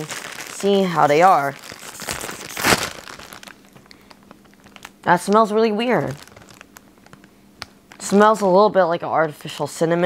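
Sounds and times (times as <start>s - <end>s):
plastic bag crinkling: 0.0s - 8.4s.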